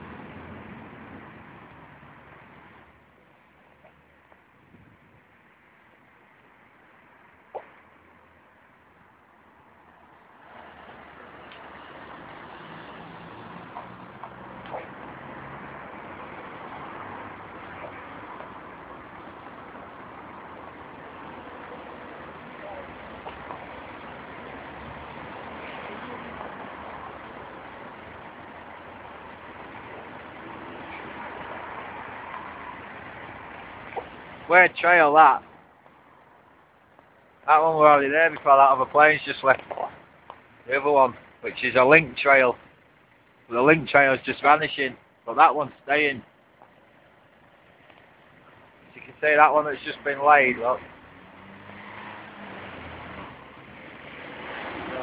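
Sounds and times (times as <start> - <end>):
street traffic noise: 0.0 - 55.0.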